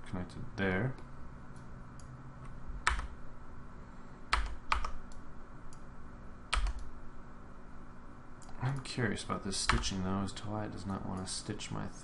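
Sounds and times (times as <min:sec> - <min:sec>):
steady low hum: 0:00.0 - 0:12.0
computer input clicks: 0:06.5 - 0:06.9.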